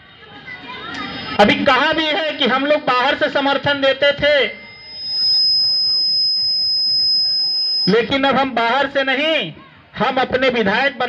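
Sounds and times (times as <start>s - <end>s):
high-pitched feedback whine: 0.0s - 9.4s.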